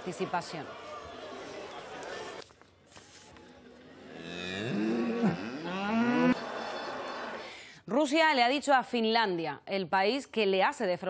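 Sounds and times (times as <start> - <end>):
cattle mooing: 4.1 - 6.4.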